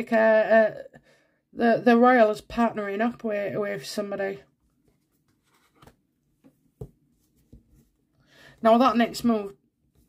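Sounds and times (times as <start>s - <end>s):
cards rustling and tapping: 4.7s - 8.0s.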